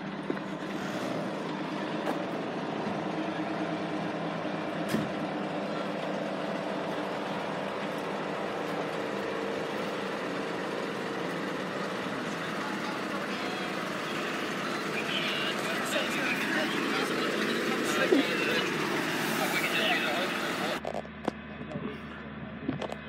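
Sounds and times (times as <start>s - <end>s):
large engine idling: 0.0s - 23.0s.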